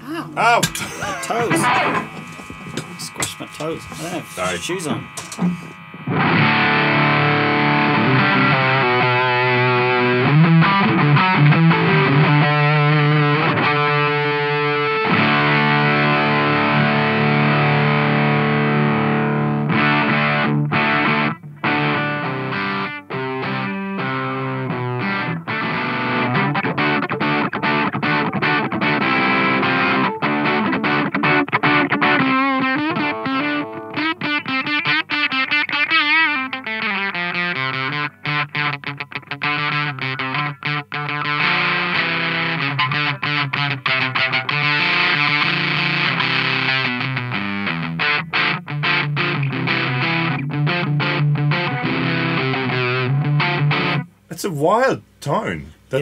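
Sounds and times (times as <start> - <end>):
distorted fuzz electric guitar: 0.0 - 56.0.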